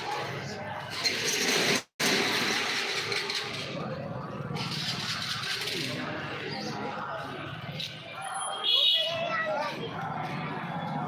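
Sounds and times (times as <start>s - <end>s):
crowd chatter: 0.0s - 1.1s, 2.9s - 11.0s.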